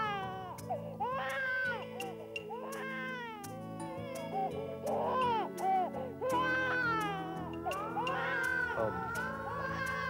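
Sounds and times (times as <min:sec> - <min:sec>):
baby crying: 0:00.0 - 0:10.0
soft background music: 0:00.0 - 0:10.0.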